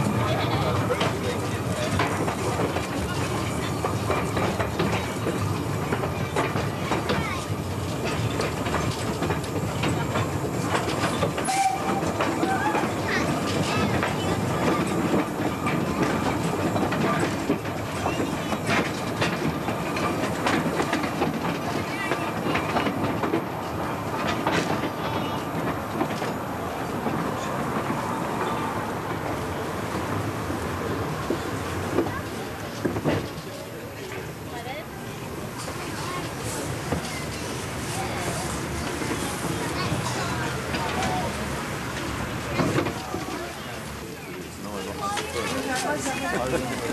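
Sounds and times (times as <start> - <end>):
steam locomotive running: 0.0 - 46.9
train wheels clattering on rails: 0.0 - 46.9.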